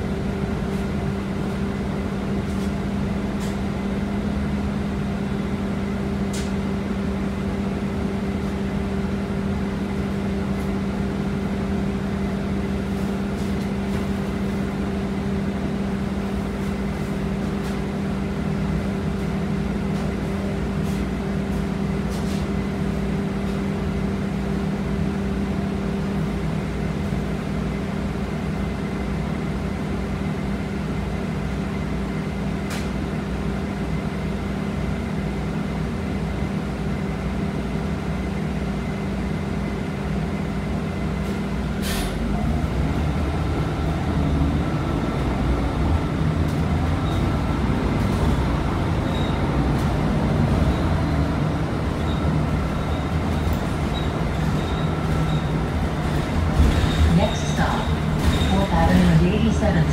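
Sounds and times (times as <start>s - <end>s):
bus engine idling drone: 0.0s - 59.9s.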